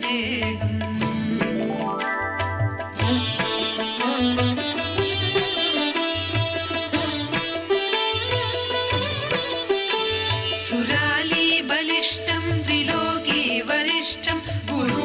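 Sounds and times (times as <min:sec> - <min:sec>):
plucked string melody: 0:00.8 - 0:10.8
wavering high melody line: 0:01.3 - 0:04.0.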